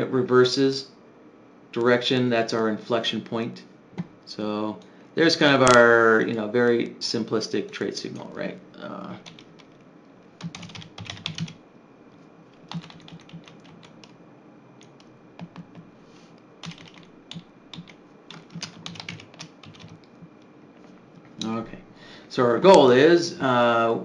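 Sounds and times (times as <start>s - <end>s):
typing on computer keyboard: 9.2s - 9.7s, 10.4s - 11.6s, 12.7s - 14.2s, 14.8s - 15.8s, 16.6s - 20.2s.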